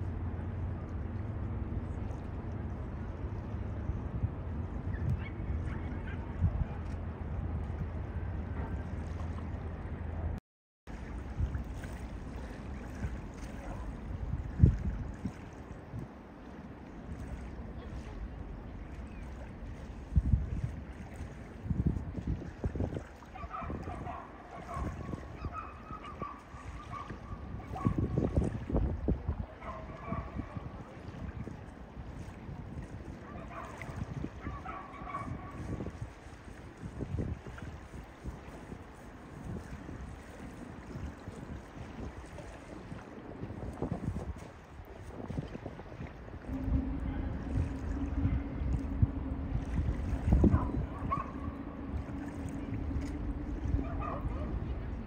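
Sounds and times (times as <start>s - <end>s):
wind buffeting microphone: 0.0s - 55.0s
steady low hum: 46.2s - 55.0s.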